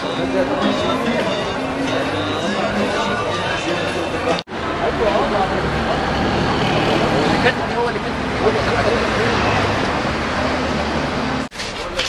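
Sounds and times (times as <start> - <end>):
people talking: 0.0 - 10.6
traffic rumble: 0.0 - 12.0.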